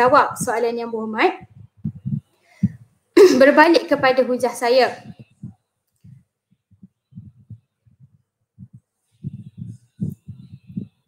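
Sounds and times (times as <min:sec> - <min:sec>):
muffled low thumps: 0:01.4 - 0:03.0, 0:04.9 - 0:11.0.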